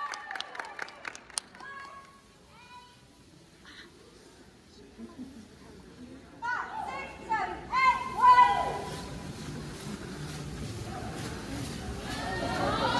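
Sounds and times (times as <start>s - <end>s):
crowd chatter: 1.3s - 12.9s.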